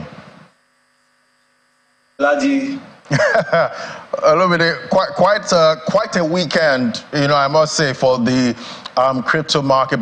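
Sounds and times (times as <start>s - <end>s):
faint electrical hum: 0.0s - 10.0s
man speaking: 2.2s - 2.9s, 3.8s - 10.0s.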